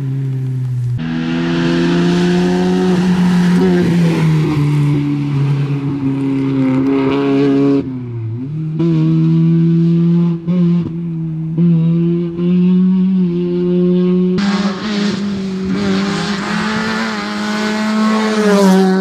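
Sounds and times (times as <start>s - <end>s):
rally car engine at high revs: 1.0s - 19.0s.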